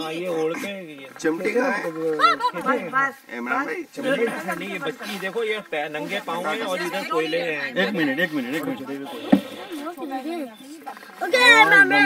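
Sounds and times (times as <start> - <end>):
voices talking sing-song: 6.0 - 12.0.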